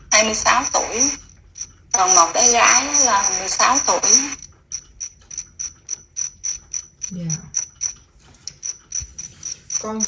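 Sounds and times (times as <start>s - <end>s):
mechanical ticking: 0.0s - 10.0s.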